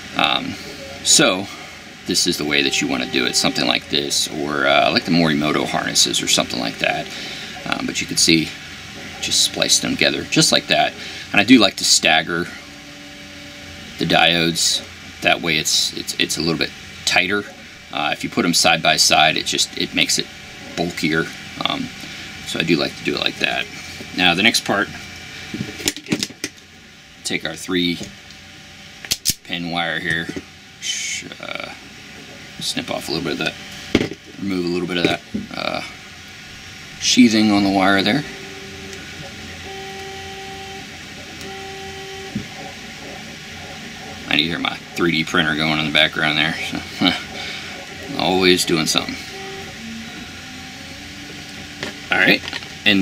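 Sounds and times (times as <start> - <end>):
faint background hum: 0.0 - 53.0
stepper motors whining: 0.0 - 53.0.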